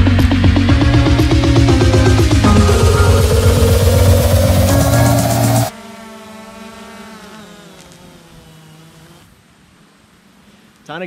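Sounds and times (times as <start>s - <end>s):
electronic music: 0.0s - 5.7s
drone propellers whining: 0.0s - 6.8s.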